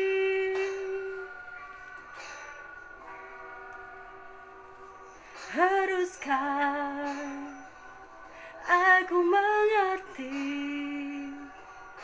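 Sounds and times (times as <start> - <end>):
woman singing: 0.0 - 1.6, 5.5 - 7.7, 8.6 - 11.6.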